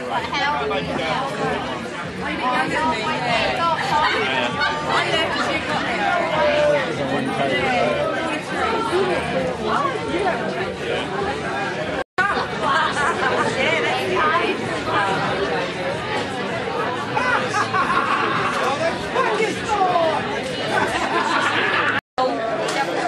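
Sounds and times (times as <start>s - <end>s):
crowd of people talking: 0.0s - 23.0s.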